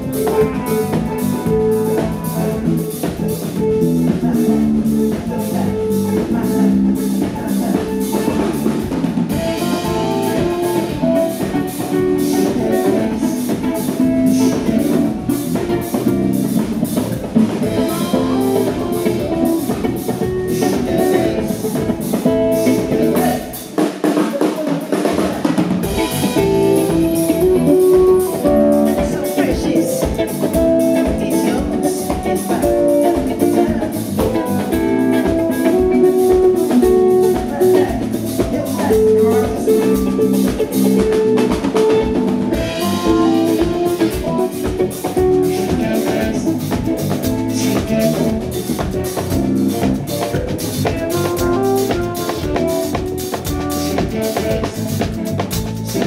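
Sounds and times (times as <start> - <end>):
bass guitar: 0.0 - 24.2, 24.8 - 56.0
drum kit: 0.0 - 56.0
electric guitar: 0.0 - 56.0
keyboards: 0.0 - 56.0.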